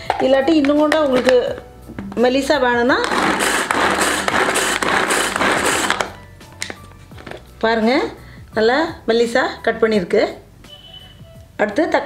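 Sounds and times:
woman's voice: 0.1 - 1.6, 2.2 - 3.2, 7.6 - 10.4, 11.6 - 12.0
hand chopper blades whirring: 3.1 - 6.1.

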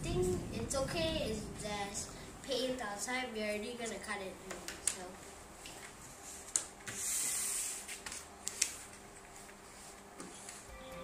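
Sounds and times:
paper rustling and swishing: 6.1 - 10.7.

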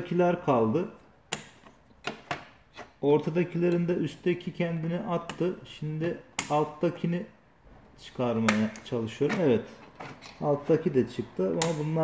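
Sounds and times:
sharp plastic clicks: 1.3 - 2.5.

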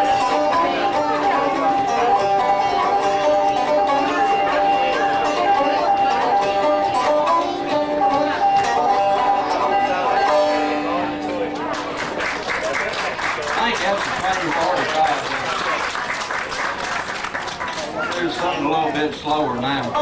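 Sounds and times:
banjo plucked notes: 0.0 - 12.7.

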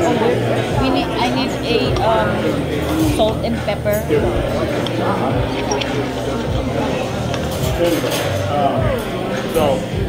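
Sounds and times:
restaurant background voices: 0.0 - 10.0
knife and fork clinking on plate: 7.3 - 8.5.

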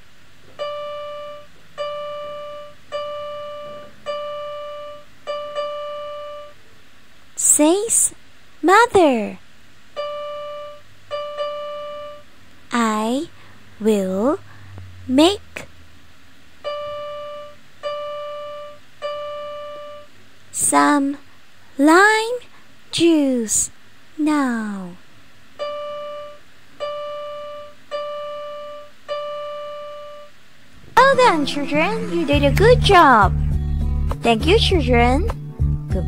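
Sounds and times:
keyboard note ringing: 0.6 - 6.5, 10.0 - 12.2.

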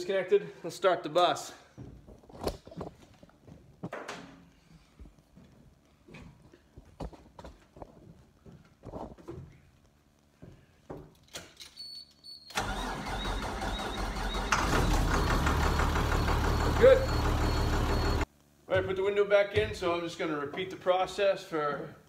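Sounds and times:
bus engine starter cranking: 12.5 - 18.2
bus engine rumbling: 14.3 - 18.2.

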